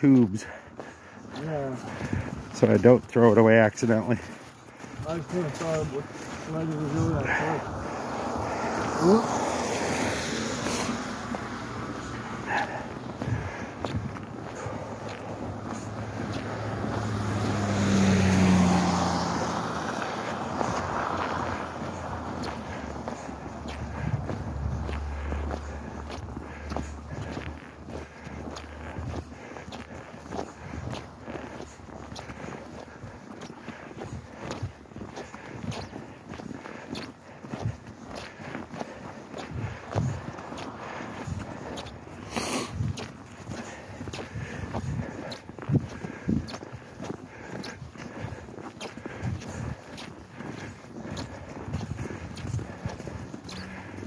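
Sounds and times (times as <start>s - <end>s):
footsteps crunching through snow: 0.0s - 54.0s
car driving past: 5.0s - 13.2s, 14.4s - 32.6s, 39.8s - 42.7s.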